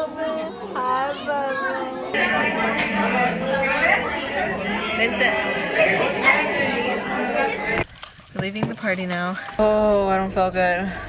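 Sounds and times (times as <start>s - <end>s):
overlapping chatter of voices: 0.0s - 9.6s.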